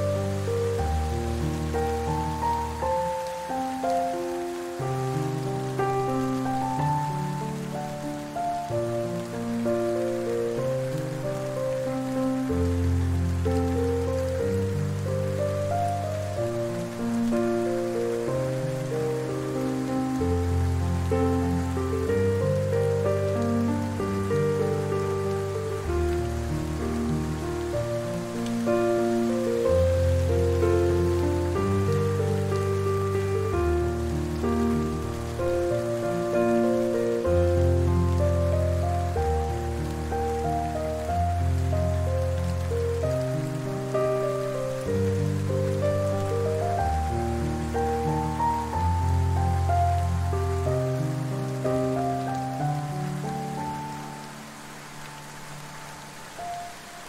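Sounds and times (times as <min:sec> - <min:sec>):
falling rain: 0:00.0 - 0:57.0
slow soft piano music: 0:00.0 - 0:57.0.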